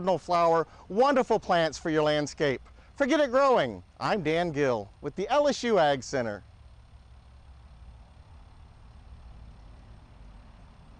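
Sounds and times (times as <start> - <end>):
low outdoor rumble: 0.0 - 10.9.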